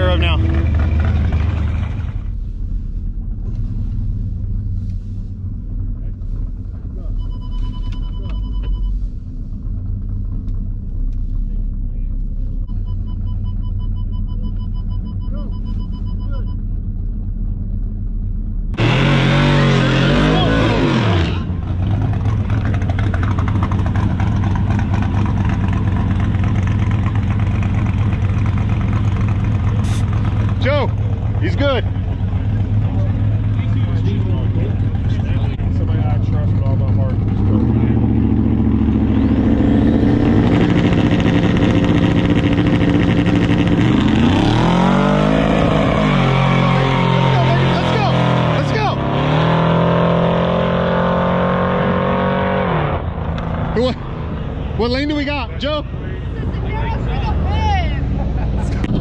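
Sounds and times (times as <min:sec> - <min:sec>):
drag racing engines revving: 0:00.0 - 0:02.3, 0:18.7 - 0:59.0.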